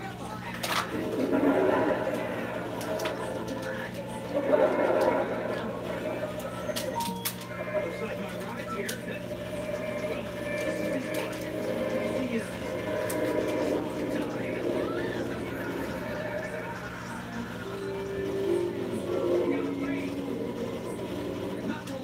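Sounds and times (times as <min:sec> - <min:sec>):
indistinct background voices: 0:00.0 - 0:22.0
low hum: 0:00.7 - 0:22.0.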